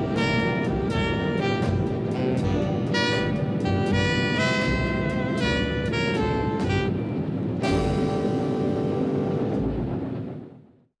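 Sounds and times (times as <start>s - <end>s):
steam train rumble: 0.0s - 10.5s.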